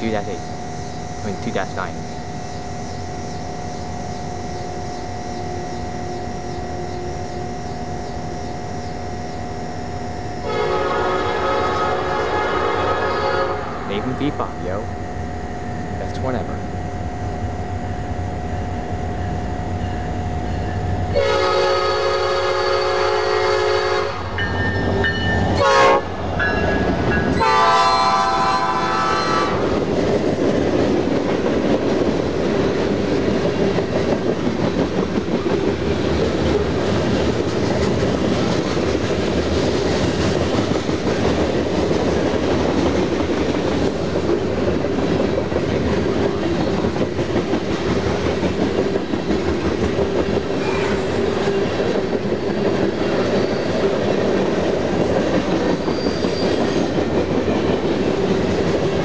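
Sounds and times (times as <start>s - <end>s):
train wheels rumbling and clacking: 0.0s - 2.2s, 22.3s - 59.0s
locomotive horn blasts: 10.4s - 14.1s, 21.1s - 24.4s, 25.6s - 26.1s, 27.4s - 29.7s.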